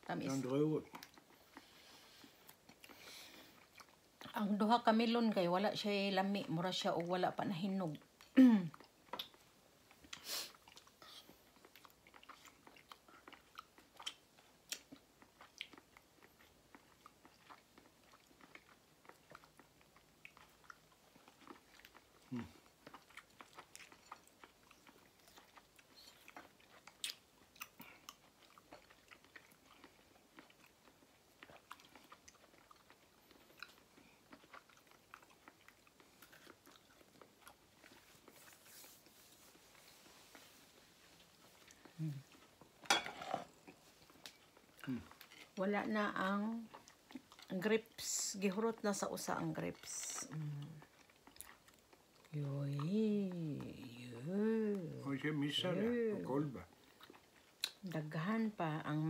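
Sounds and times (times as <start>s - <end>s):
person chewing juicy fruit: 0.2s - 5.0s, 6.1s - 59.0s.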